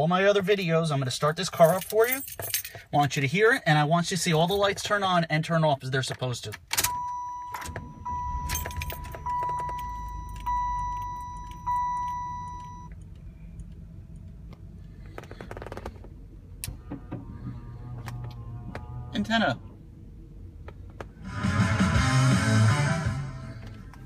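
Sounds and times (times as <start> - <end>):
keys jangling: 1.6 - 2.9
car engine cranking and idling: 5.9 - 24.0
car warning chime dinging: 6.8 - 13.0.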